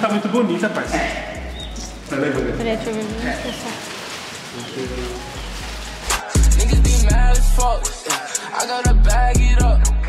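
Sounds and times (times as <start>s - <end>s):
rain hissing: 0.0s - 8.6s.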